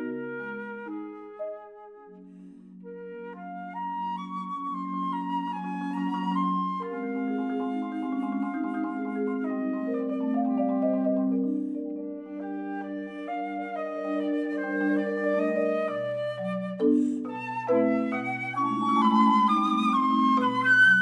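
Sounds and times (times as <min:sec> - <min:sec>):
flute melody: 0:00.0 - 0:21.0
marimba chords: 0:16.8 - 0:20.4.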